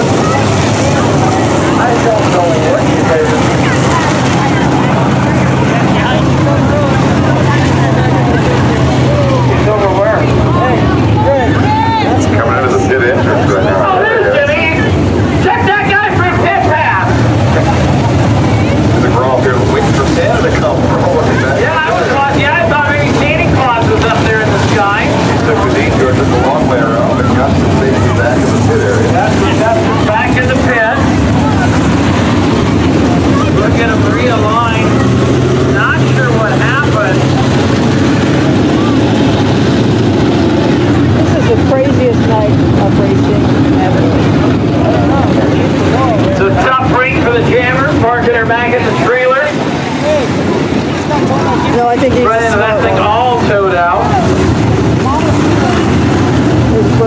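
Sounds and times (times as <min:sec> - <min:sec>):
race car engines passing: 0:00.0 - 0:57.0.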